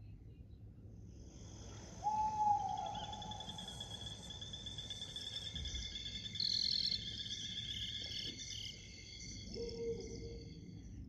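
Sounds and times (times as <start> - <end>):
crickets chirping: 1.2 - 11.0.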